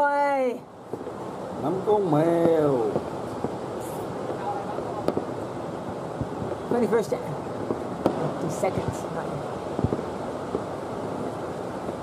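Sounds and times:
distant fireworks crackling: 0.0s - 12.0s
firecracker sharp cracks: 0.9s - 9.0s, 9.6s - 12.0s.

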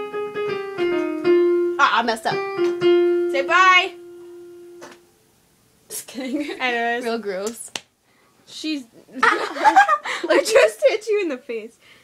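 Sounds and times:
held keyboard note: 0.0s - 5.1s.

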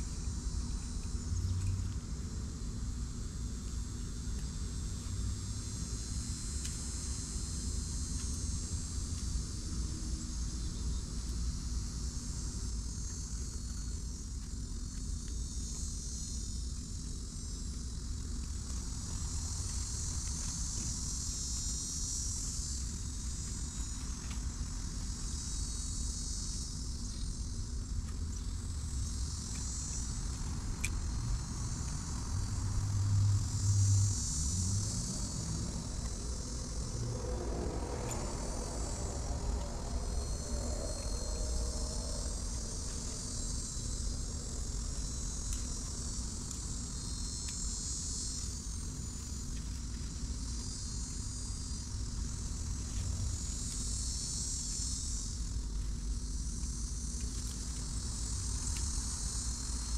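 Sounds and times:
constant low rumble: 0.0s - 59.9s
insects calling: 0.0s - 59.9s
deeper hum: 32.1s - 45.8s.

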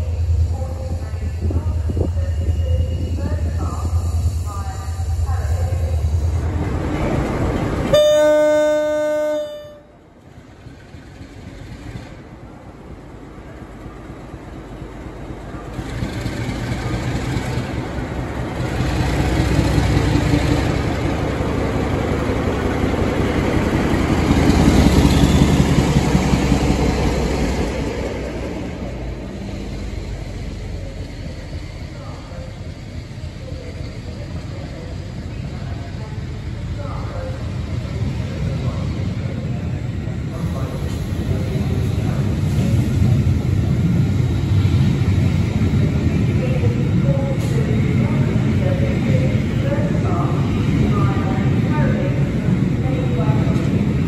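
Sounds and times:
diesel locomotive engine working: 0.0s - 54.0s
locomotive horn blast: 7.9s - 10.0s.

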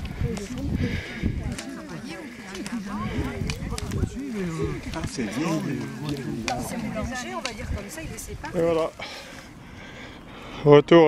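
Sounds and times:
people talking: 0.1s - 8.9s.

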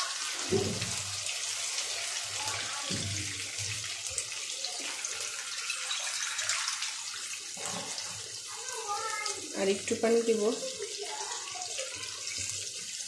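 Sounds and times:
water pouring into a wok: 0.0s - 13.0s.

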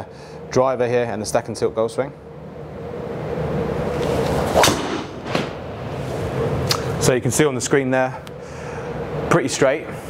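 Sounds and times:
room hum: 0.0s - 10.0s
golf club swish: 3.9s - 6.9s
golf ball struck with crack: 4.6s - 5.6s.

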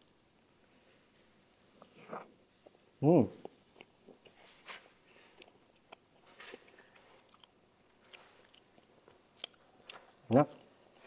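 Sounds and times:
person chewing: 1.8s - 2.8s, 3.4s - 11.0s.

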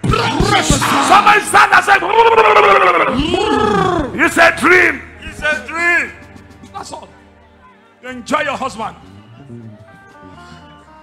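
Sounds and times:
woman wailing: 2.5s - 4.1s.

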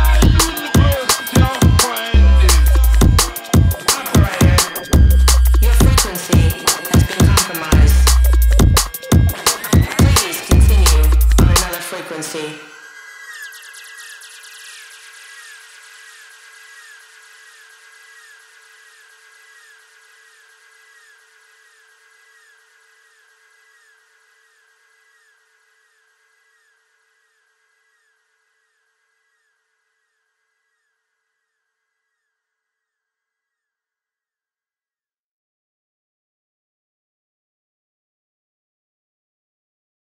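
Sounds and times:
sustained warbling synth tone: 0.0s - 18.1s.

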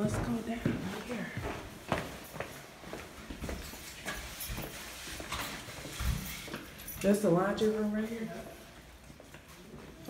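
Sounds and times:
footsteps in a corridor: 0.0s - 10.0s.

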